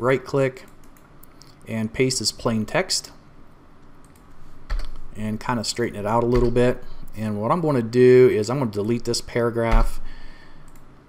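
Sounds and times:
computer keyboard keystrokes: 4.0s - 5.0s.

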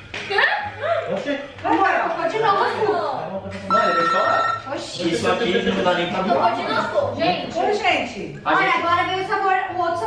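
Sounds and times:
electronic beep: 3.7s - 4.7s.

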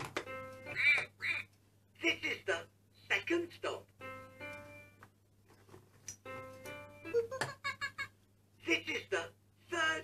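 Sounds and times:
toy recorded voice: 0.6s - 1.6s.

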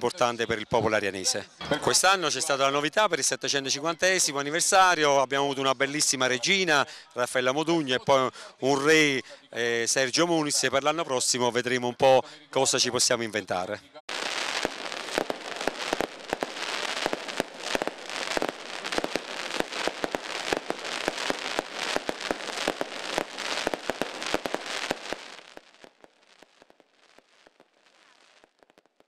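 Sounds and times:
fireworks crackling and banging: 14.1s - 29.0s.

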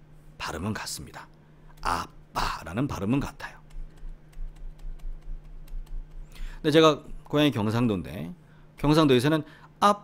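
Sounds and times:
low electrical hum: 0.0s - 10.0s
stylus clicking on tablet: 3.4s - 6.4s.

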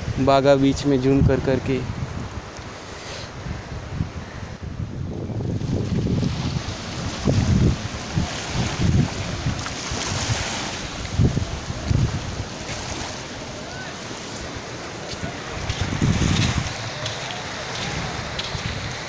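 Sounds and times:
sea waves on shore: 0.0s - 19.0s
wind buffeting microphone: 0.0s - 19.0s.

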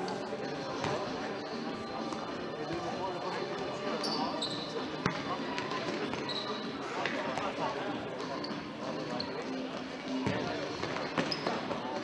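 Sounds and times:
voices of players and spectators: 0.0s - 12.0s
shoes squeaking on court: 3.9s - 7.5s, 8.2s - 12.0s.

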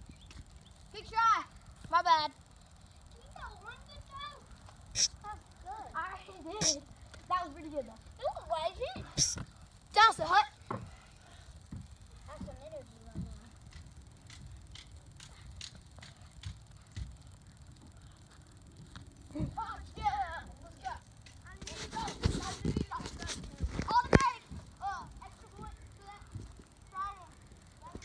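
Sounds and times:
light irregular ticks: 0.0s - 28.0s.

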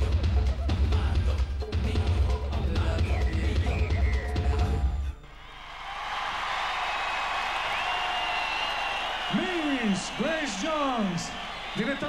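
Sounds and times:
audience applauding and cheering: 5.2s - 12.0s.

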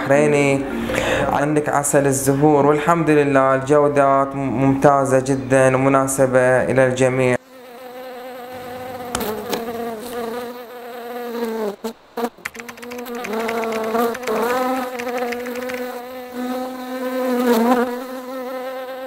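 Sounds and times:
honeybee buzzing: 7.6s - 19.0s.

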